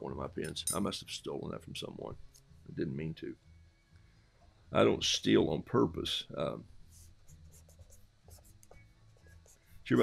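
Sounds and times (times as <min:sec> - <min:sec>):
pen scratching on paper: 0:06.9 - 0:09.8.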